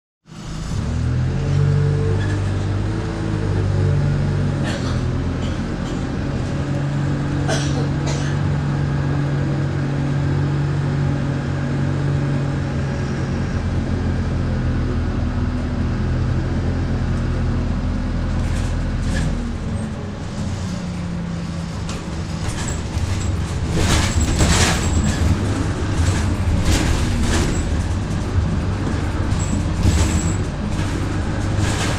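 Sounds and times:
bus engine drone: 0.2 - 31.9
road noise: 0.2 - 31.9
bus body rattling: 1.4 - 31.9.

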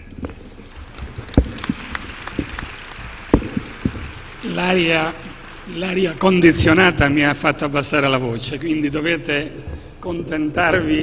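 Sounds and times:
audience applauding: 0.0 - 9.0.

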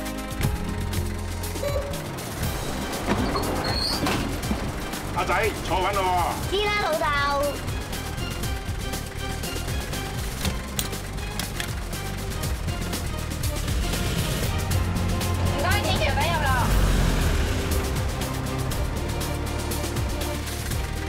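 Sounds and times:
background music: 0.0 - 21.0
low vehicle rumble: 0.0 - 21.0.

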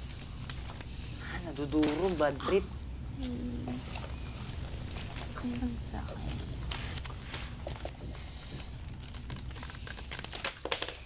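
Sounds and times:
leaves and tape crinkling: 0.0 - 11.0.

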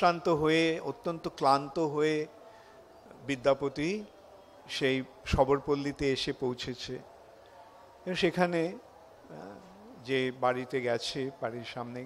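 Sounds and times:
man speaking into a microphone: 4.7 - 7.0, 8.1 - 12.0.

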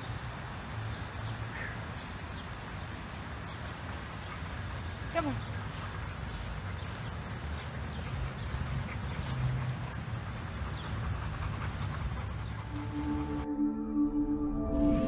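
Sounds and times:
synthesized music with held tones: 12.7 - 15.0.

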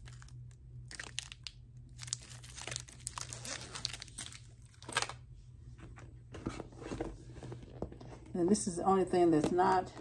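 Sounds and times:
plastic wrappers crinkling: 0.0 - 5.2.

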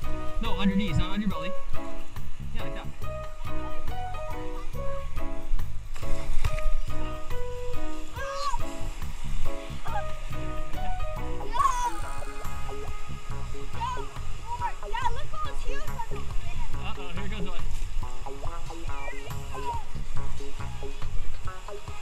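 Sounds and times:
background music with steady beat: 0.0 - 22.0.

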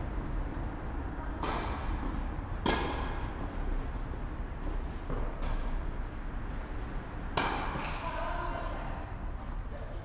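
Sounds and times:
tennis racket hitting ball: 1.4 - 3.4, 7.2 - 8.1.

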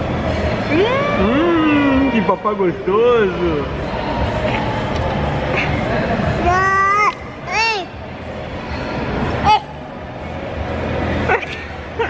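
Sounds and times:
shopping mall hubbub: 0.0 - 12.0.

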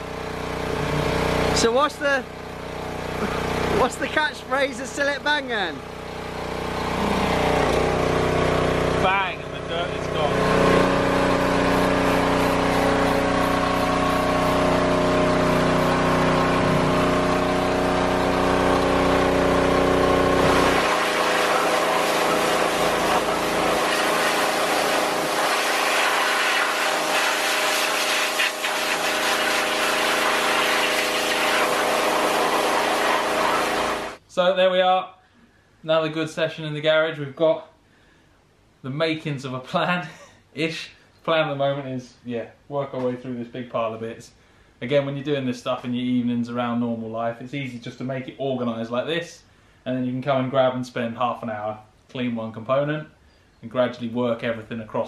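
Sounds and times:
pressure washer motor humming: 0.0 - 34.2
water jet hissing: 10.4 - 14.8, 20.3 - 34.2.

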